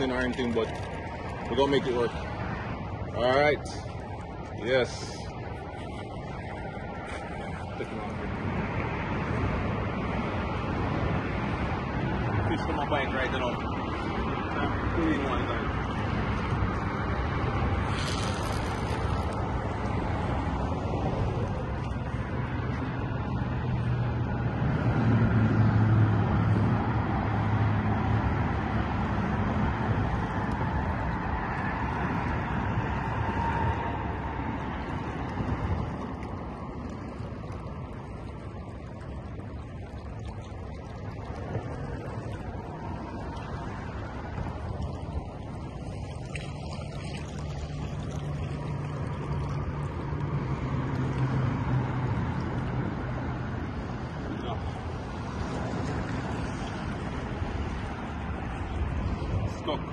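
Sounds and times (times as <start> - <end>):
road traffic rushing: 0.0 - 40.4, 41.2 - 59.9
low engine hum: 0.0 - 59.9.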